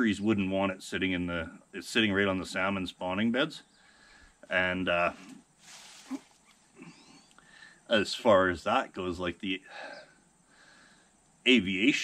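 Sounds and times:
soft intake of breath: 3.8 - 4.4, 5.2 - 7.9, 9.7 - 11.2
man saying uh: 4.4 - 5.3, 7.9 - 10.0, 11.5 - 12.0.

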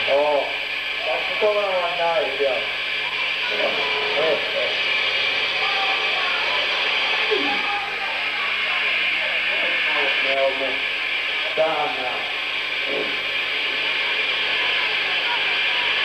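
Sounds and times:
indistinct voices: 0.0 - 16.0.

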